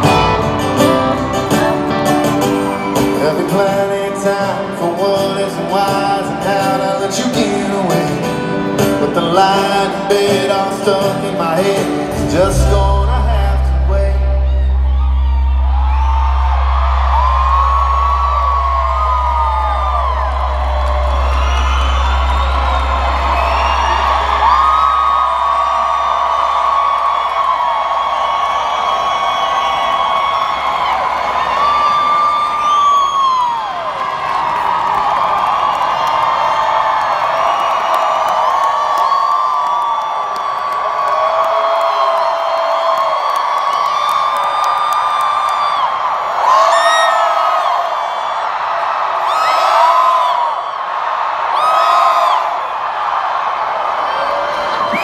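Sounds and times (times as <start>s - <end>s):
people whooping: 0.0s - 7.9s, 9.3s - 55.0s
crowd cheering and screaming: 0.0s - 55.0s
low bass note: 12.4s - 24.4s.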